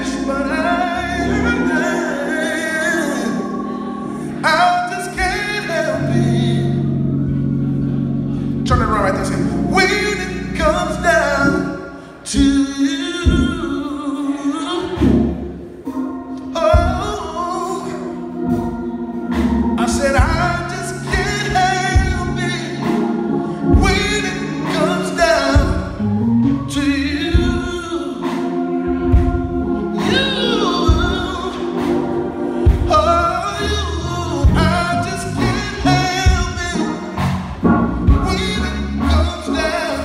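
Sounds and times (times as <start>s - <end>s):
man singing into a microphone: 0.0s - 6.9s, 8.7s - 15.4s, 16.4s - 18.2s, 19.8s - 28.5s, 29.9s - 31.9s, 32.6s - 37.2s, 38.1s - 40.0s
amplified gospel band: 0.0s - 40.0s
low bass notes: 0.0s - 40.0s
drum hits: 36.2s - 38.5s.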